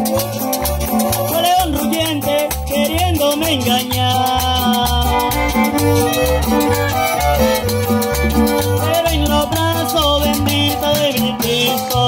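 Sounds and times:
bass guitar notes: 0.0s - 12.0s
live latin dance band: 0.0s - 12.0s
violins bowing melody: 4.6s - 10.9s.

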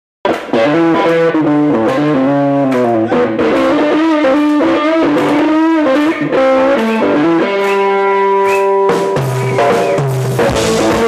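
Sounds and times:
electric guitar lead: 0.2s - 11.0s
blues band playing live: 0.3s - 11.0s.

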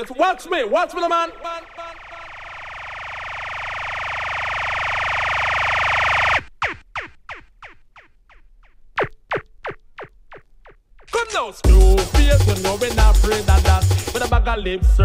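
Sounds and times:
synthesized noise swell: 1.2s - 8.1s
laser-like zaps: 1.6s - 8.4s.

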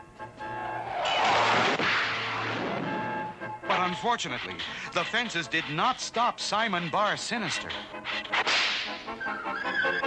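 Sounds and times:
whip-like swish: 8.3s - 9.0s.

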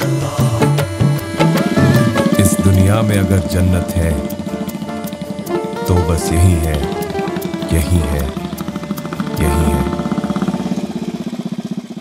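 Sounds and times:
motorcycle engine thumping: 0.7s - 6.0s, 6.8s - 12.0s.

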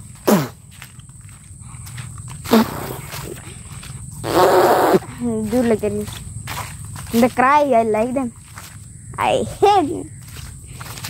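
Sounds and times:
boy blowing a raspberry: 0.2s - 0.6s, 2.4s - 3.5s, 4.2s - 5.2s.

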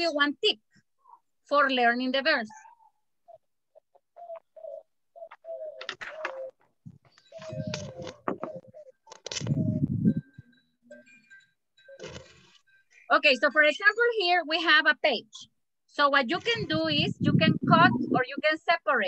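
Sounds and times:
dove-like cooing: 2.5s - 11.2s
handling noise: 5.8s - 9.8s.

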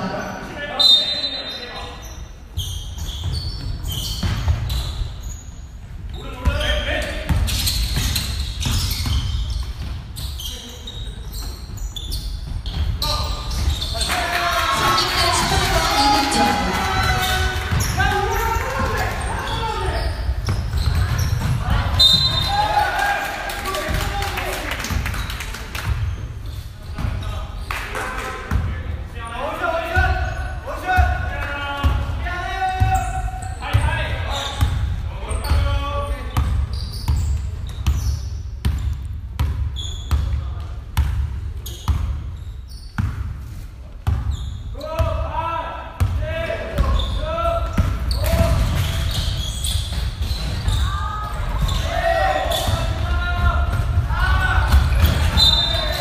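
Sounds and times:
basketball bouncing on gym floor: 2.6s - 5.0s, 7.3s - 14.0s, 17.0s - 22.6s, 32.8s - 43.4s, 46.0s - 56.0s
indistinct voices echoing: 13.0s - 24.9s, 50.3s - 56.0s.

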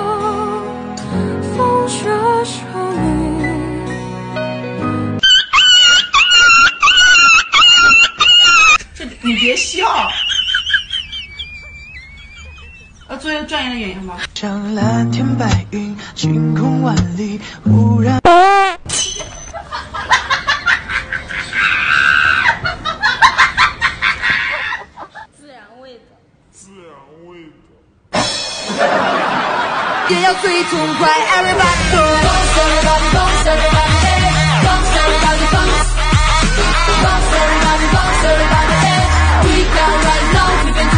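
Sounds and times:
soft music: 0.0s - 5.2s, 14.8s - 18.3s
high-pitched comedy cries: 5.2s - 8.8s
high-pitched scream: 5.2s - 8.8s
laughter in bursts: 5.2s - 13.1s, 19.5s - 25.3s, 28.7s - 30.2s.

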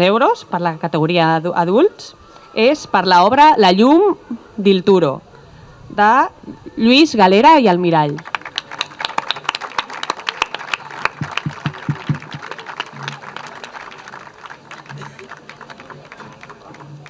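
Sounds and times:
audience clapping: 8.0s - 17.0s.

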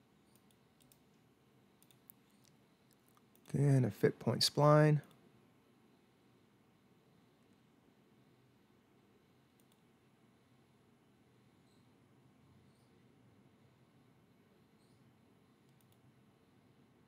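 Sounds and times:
faint room hiss: 0.0s - 17.0s
computer mouse clicks: 0.2s - 1.2s, 1.8s - 3.6s, 9.5s - 9.9s, 15.6s - 16.1s.

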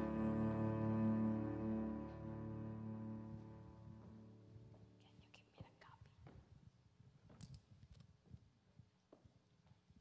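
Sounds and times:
held music notes: 0.0s - 4.8s
faint whispering: 5.0s - 6.3s.

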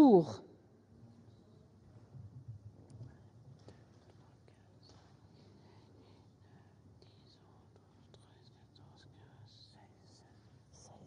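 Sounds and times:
faint low hum: 0.0s - 11.0s
soft whispers: 2.8s - 11.0s.

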